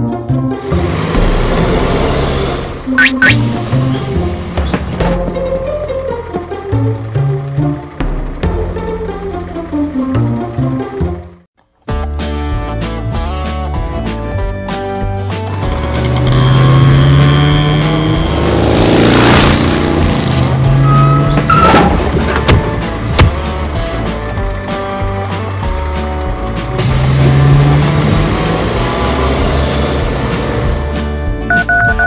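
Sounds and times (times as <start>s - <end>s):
background music: 0.0s - 32.0s
vehicles driving by: 0.5s - 11.4s, 14.2s - 32.0s
car pulling up: 0.6s - 11.2s, 15.3s - 31.9s.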